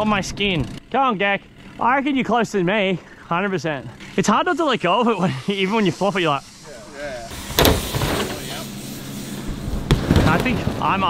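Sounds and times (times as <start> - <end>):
bike tyres rolling on wood: 7.3 - 11.0
sharp knock: 7.5 - 8.4.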